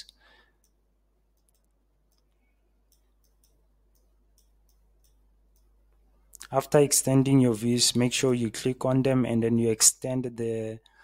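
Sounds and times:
computer mouse clicks: 0.6 - 5.7.

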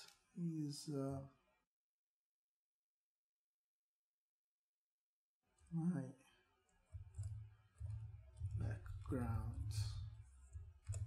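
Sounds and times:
low rumble: 7.2 - 11.0.

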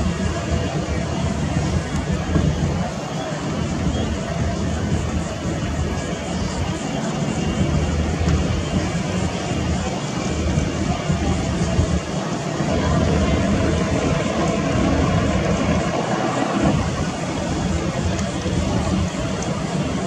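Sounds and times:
airboat engine rumbling: 0.0 - 20.0
faint voices: 0.0 - 20.0
wind on microphone: 0.0 - 20.0.

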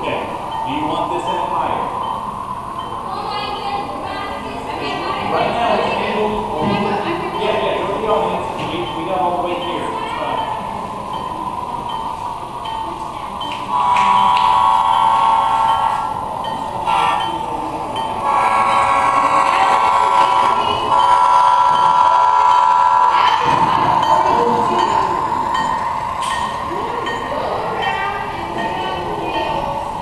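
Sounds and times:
model locomotive running: 0.0 - 30.0
model train chime horn: 13.4 - 29.6.

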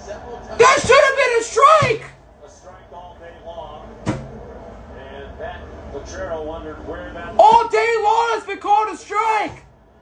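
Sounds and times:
sharp knock: 4.0 - 4.4.

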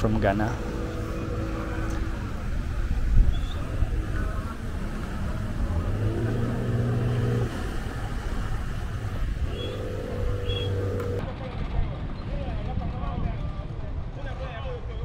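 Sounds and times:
outboard motor running: 0.0 - 11.2.

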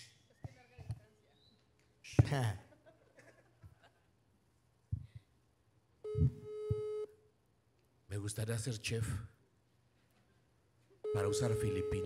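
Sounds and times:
telephone ringback tone: 6.1 - 7.1, 11.1 - 12.0.

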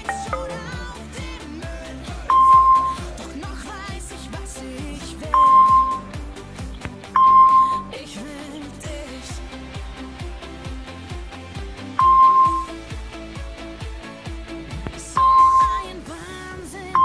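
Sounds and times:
short app beep: 0.0 - 0.6, 2.3 - 3.0, 5.4 - 6.0, 7.2 - 7.8, 12.0 - 12.7, 15.2 - 15.7
pop music with steady beat: 0.0 - 17.0.

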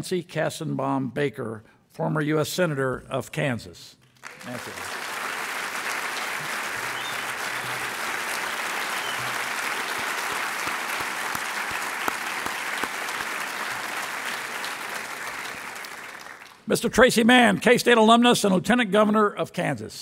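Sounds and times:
audience applauding: 4.2 - 16.7.

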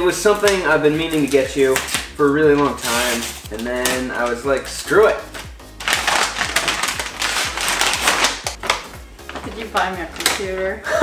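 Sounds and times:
paper tearing and crumpling: 0.4 - 4.4, 5.2 - 10.4.

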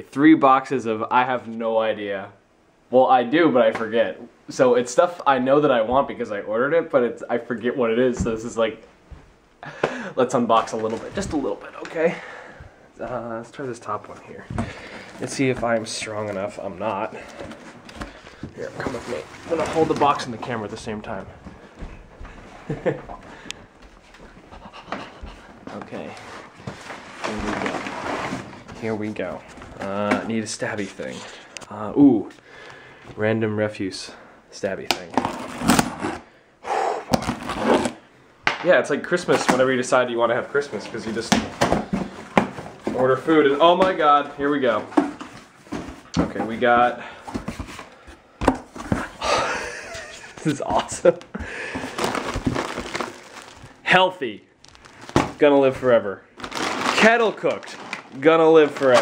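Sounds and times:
man breathing hard and straining: 9.6 - 10.2, 14.5 - 15.2, 36.2 - 37.2, 51.4 - 52.2
packages rustling against cardboard: 10.2 - 12.4, 13.0 - 31.5, 37.0 - 38.0, 39.1 - 59.0
plastic bag crinkling: 51.8 - 53.8, 54.6 - 55.5, 56.4 - 59.0.

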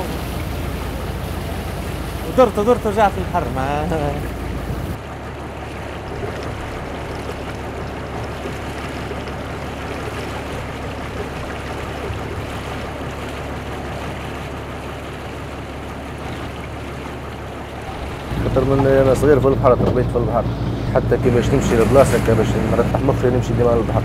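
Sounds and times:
low even hum: 0.0 - 24.0
sea water washing: 0.0 - 24.0.

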